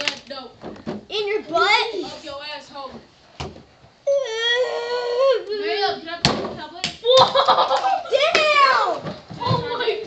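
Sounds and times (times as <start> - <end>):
young person wailing: 4.1 - 5.6.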